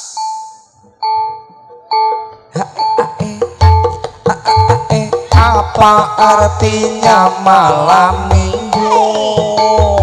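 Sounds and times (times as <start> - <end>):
bell-like struck notes: 0.0 - 3.1.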